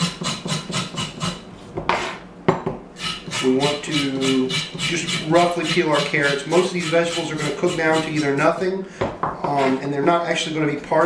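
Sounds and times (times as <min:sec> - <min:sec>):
knife on cutting board: 0:00.0 - 0:02.2, 0:03.0 - 0:08.6.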